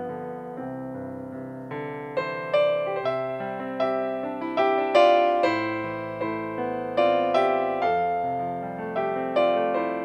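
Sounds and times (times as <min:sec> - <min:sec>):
slow piano chords: 0:00.0 - 0:10.0.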